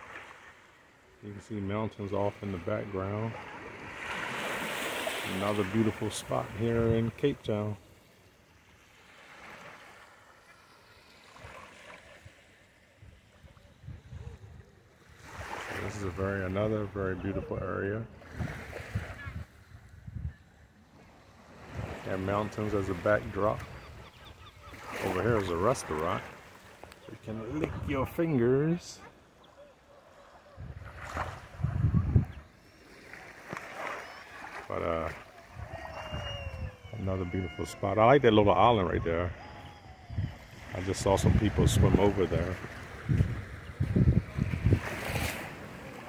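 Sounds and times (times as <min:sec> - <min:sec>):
small waves washing on shore: 0:00.0 - 0:20.2, 0:20.8 - 0:46.0
wind buffeting microphone: 0:13.0 - 0:14.8, 0:18.2 - 0:20.5, 0:27.4 - 0:28.2, 0:30.5 - 0:32.6, 0:35.5 - 0:37.6, 0:39.0 - 0:45.8.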